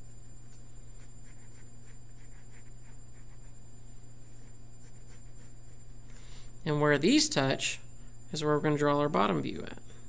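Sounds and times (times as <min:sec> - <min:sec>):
steady low hum: 0:00.0 - 0:10.0
pen scratching on paper: 0:00.5 - 0:03.6, 0:04.2 - 0:05.9.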